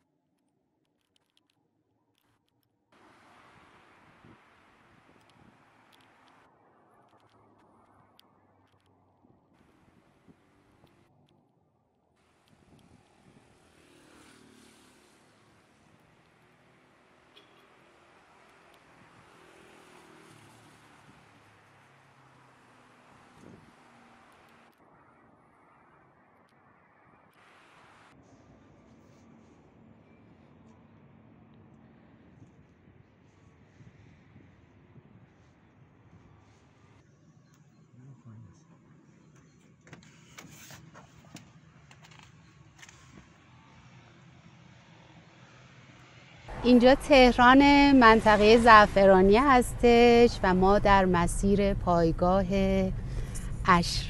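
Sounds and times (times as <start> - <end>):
faint clicks: 5.1 - 9.0
faint hum of passing vehicle: 12.4 - 39.6, 41.5 - 54.0.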